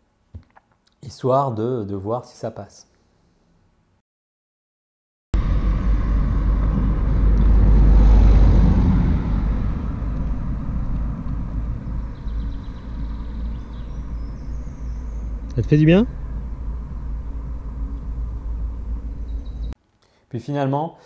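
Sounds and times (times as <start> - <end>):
car passing: 5.4 - 19.8
wind rumbling on microphone: 5.4 - 19.8.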